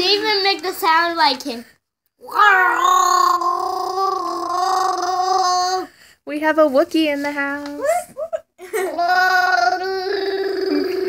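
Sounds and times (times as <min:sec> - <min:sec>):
boy imitating a roar: 0:02.2 - 0:05.9, 0:08.9 - 0:11.0.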